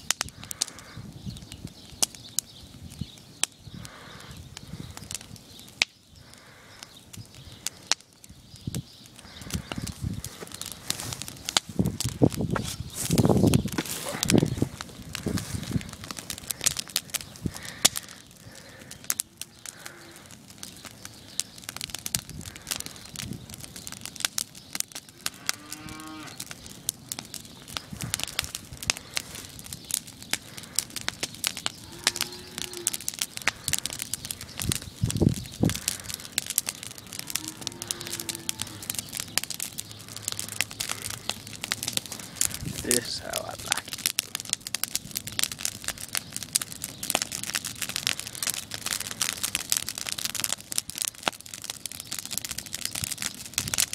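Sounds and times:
wood fire crackling and popping: 0:00.0 - 0:53.9
drawn-out animal calls: 0:30.3 - 0:34.8, 0:35.4 - 0:44.4.

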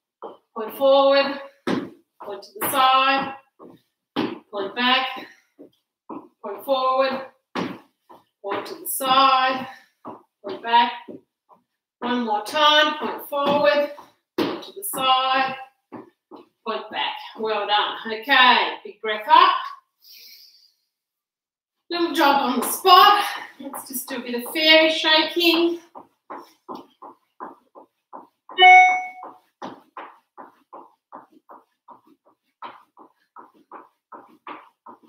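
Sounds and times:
woman speaking: 0:00.6 - 0:01.4, 0:02.3 - 0:03.3, 0:04.5 - 0:05.3, 0:06.4 - 0:07.2, 0:08.5 - 0:09.7, 0:10.5 - 0:11.1, 0:12.0 - 0:14.0, 0:14.8 - 0:15.6, 0:16.7 - 0:19.7, 0:21.9 - 0:25.8.

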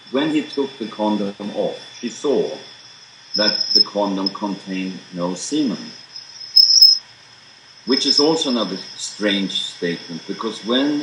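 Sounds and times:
high-pitched whine and squeal: 0:00.0 - 0:11.0.

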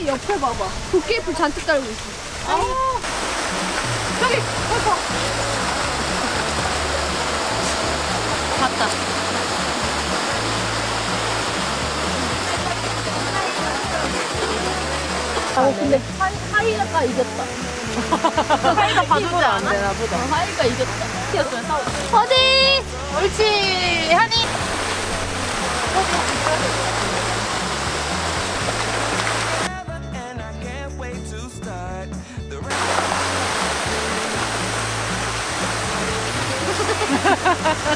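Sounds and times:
stream rushing: 0:00.0 - 0:29.7, 0:32.7 - 0:37.9
background music with bass line: 0:02.5 - 0:37.9.

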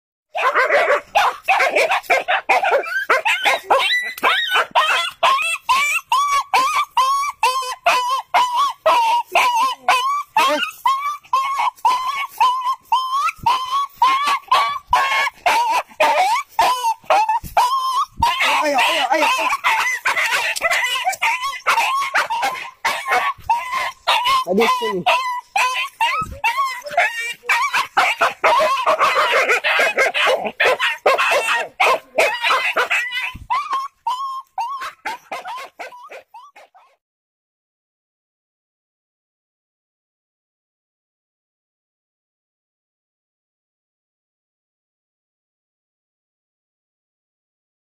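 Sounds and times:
small dog barking: 0:00.4 - 0:05.9, 0:07.8 - 0:12.4, 0:13.4 - 0:17.6, 0:18.2 - 0:33.9, 0:34.6 - 0:36.9
person laughing: 0:18.4 - 0:21.6.

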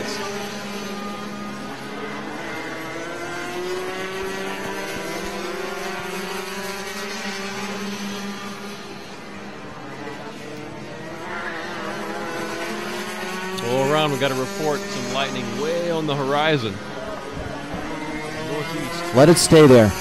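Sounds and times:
kart engines racing: 0:00.0 - 0:20.0.

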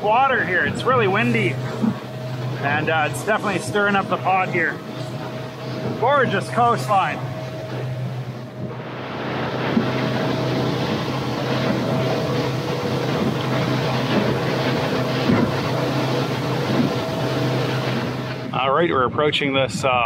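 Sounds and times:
water splashing against hull: 0:00.0 - 0:18.6
motorboat engine running: 0:00.0 - 0:19.6
wind on microphone: 0:07.0 - 0:20.0.

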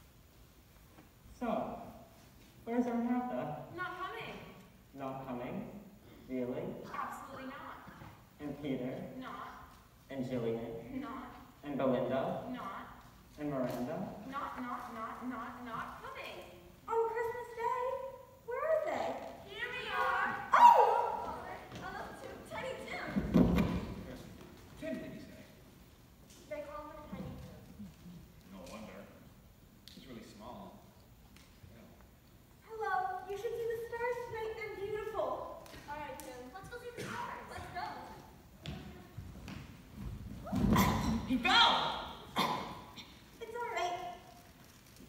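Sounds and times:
actors' excited vocal exclamations: 0:20.0 - 0:21.4.

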